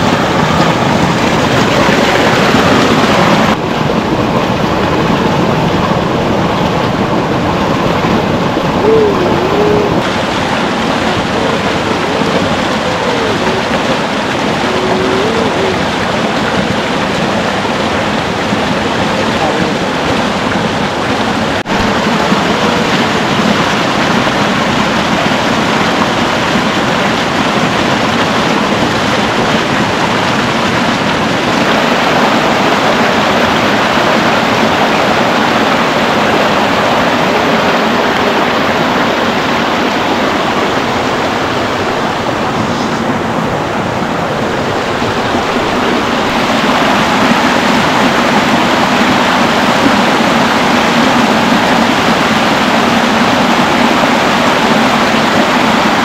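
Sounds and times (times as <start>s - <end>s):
stream rushing over stones: 0.0s - 56.0s.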